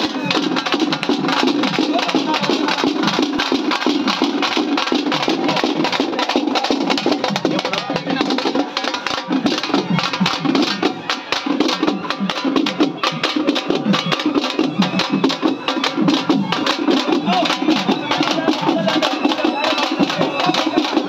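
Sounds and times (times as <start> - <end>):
barrel drums beaten: 0.0 - 21.0.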